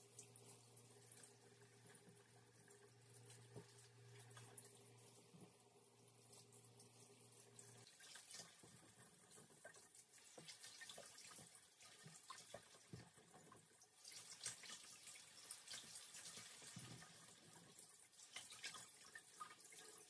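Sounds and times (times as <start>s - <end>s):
kitchen tap running: 0.0s - 20.0s.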